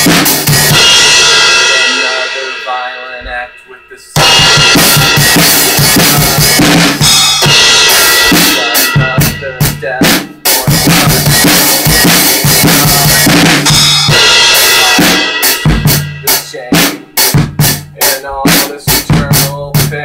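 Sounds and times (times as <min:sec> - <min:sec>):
cymbals ringing: 0:00.0 - 0:17.0
drum kit beat: 0:00.0 - 0:20.0.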